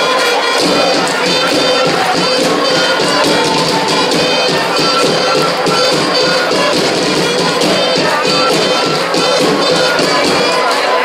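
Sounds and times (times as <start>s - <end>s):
field drums beating: 0.0s - 11.0s
fifes playing a tune: 0.0s - 11.0s.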